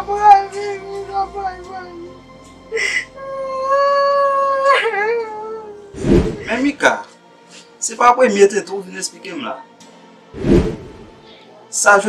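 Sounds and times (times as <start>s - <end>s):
woman crying and wailing: 2.7s - 6.6s.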